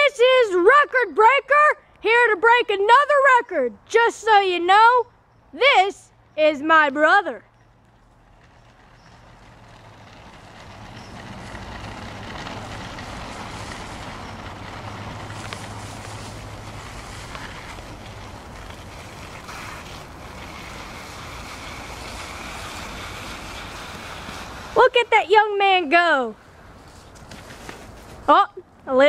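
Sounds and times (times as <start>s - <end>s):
scooter wheels rolling on pavement: 0.0s - 29.0s.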